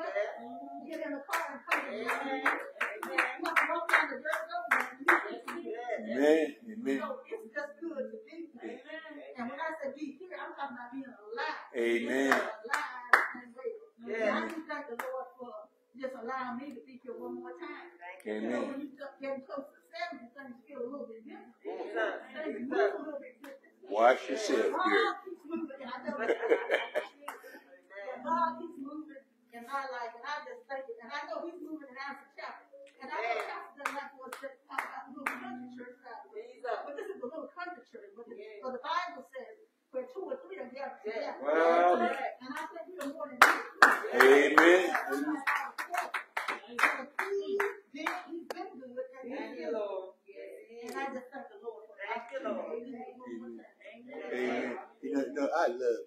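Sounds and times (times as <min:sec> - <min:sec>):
sharp hand claps: 0:00.9 - 0:05.6, 0:12.2 - 0:13.4, 0:14.3 - 0:15.2, 0:33.4 - 0:35.5, 0:42.5 - 0:48.7.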